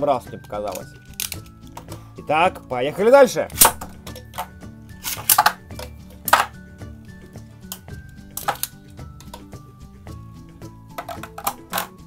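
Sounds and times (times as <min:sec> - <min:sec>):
background music: 0:00.0 - 0:12.0
spinning tops clacking together: 0:03.6 - 0:06.6.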